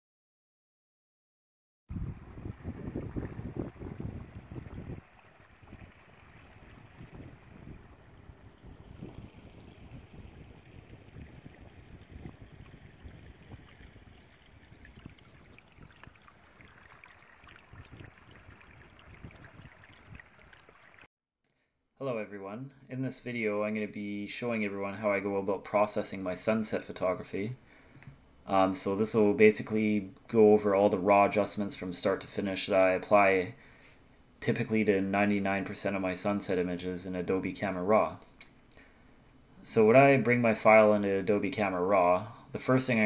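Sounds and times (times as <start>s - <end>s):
stream trickling: 1.9s - 21.1s.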